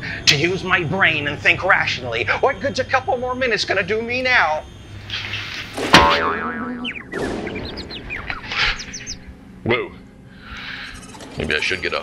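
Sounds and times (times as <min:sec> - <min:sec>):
falling whistle-like chirps: 0:04.6 - 0:09.4
cartoon bonk: 0:05.9 - 0:07.5
wobbling boing: 0:06.0 - 0:07.6.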